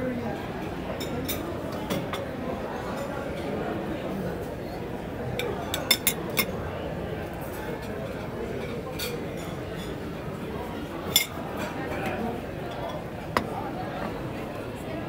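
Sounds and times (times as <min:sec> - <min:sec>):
chatter of many voices: 0:00.0 - 0:15.0
utensils clinking on china plates: 0:05.4 - 0:06.6, 0:11.1 - 0:13.5.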